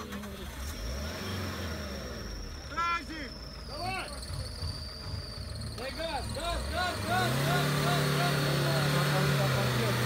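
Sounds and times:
car engine revving under load: 0.0s - 10.0s.

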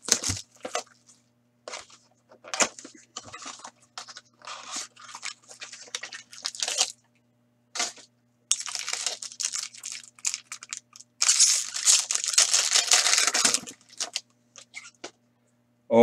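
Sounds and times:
foil wrapper crinkling and tearing: 0.0s - 7.0s, 7.8s - 14.9s
card box tearing open: 11.2s - 14.2s.

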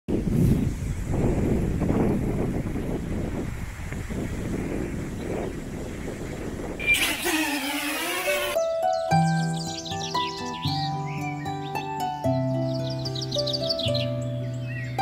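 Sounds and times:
wind buffeting microphone: 0.1s - 8.6s
short downward sliding tone: 6.8s - 8.6s.

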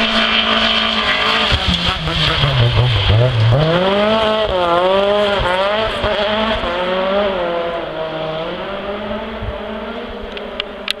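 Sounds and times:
rally car engine revving: 0.0s - 11.0s.

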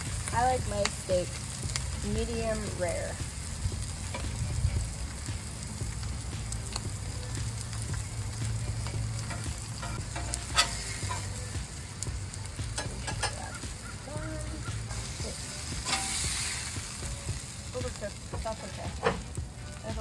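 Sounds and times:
steak sizzling on a griddle: 0.0s - 20.0s
metal spatula scraping griddle: 8.6s - 11.4s, 12.8s - 13.6s, 14.9s - 17.0s.

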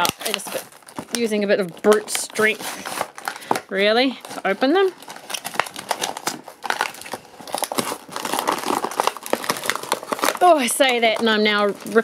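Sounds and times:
plastic packaging being ripped open: 0.0s - 12.0s.

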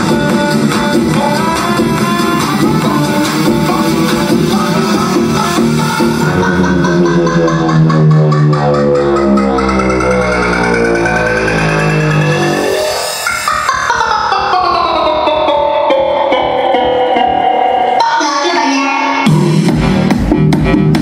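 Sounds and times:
electronic dance music: 0.0s - 21.0s
pitched sound sliding downward: 3.2s - 18.0s.

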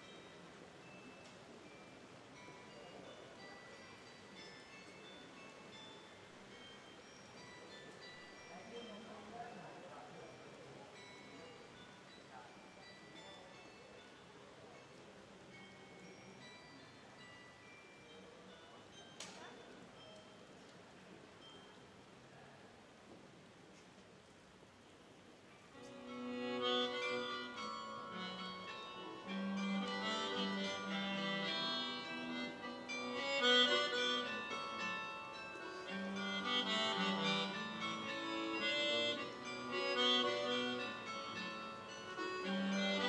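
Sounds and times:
carillon bells playing: 0.0s - 19.2s, 25.9s - 43.0s.

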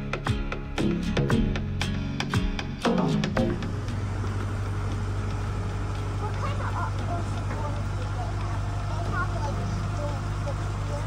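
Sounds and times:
boat engine humming: 0.0s - 11.0s
faint passenger voices: 5.1s - 11.0s.

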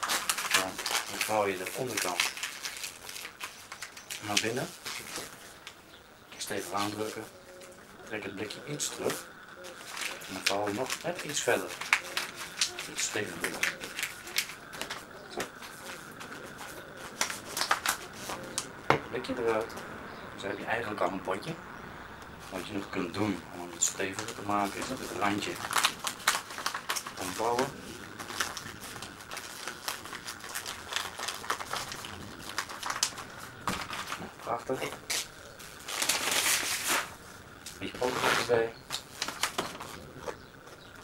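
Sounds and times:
newspaper crinkling: 0.0s - 5.8s, 6.4s - 19.9s, 22.4s - 41.0s.

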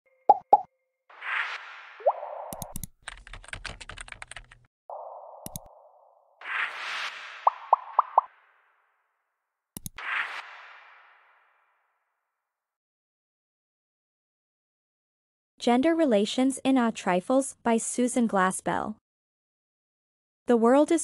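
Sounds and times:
keyboard typing clicks: 2.5s - 4.6s, 5.4s - 5.7s, 9.8s - 10.0s
interface pops: 4.9s - 8.5s.

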